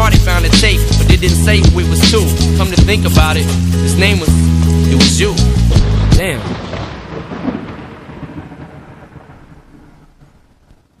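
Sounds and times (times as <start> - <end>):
rain hiss: 0.0 - 11.0
thunder rumble: 5.1 - 11.0.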